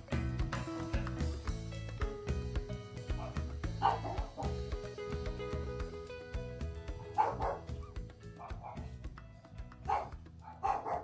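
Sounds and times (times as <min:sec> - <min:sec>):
music playing: 0:00.0 - 0:11.0
dog barking: 0:03.2 - 0:04.6, 0:07.1 - 0:08.9, 0:09.9 - 0:11.0.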